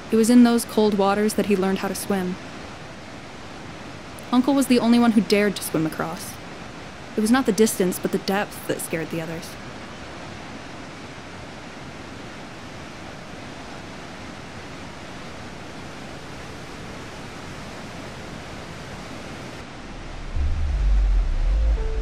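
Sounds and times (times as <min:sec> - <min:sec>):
deep low rumble: 0:19.6 - 0:22.0.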